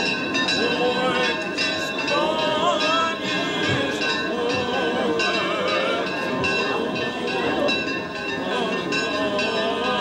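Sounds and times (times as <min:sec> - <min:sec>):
church bells ringing: 0:00.0 - 0:10.0
voices singing: 0:00.3 - 0:10.0.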